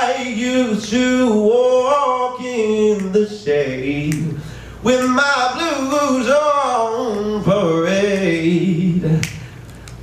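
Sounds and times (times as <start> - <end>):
man singing unaccompanied: 0.0 - 9.3.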